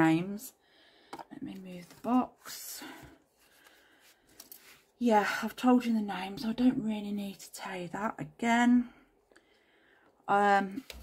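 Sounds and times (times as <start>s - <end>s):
faint handling sounds: 1.1s - 5.0s.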